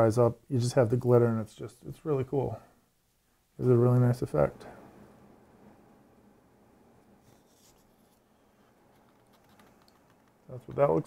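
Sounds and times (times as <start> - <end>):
faint scratchy rustle: 7.2 - 11.0.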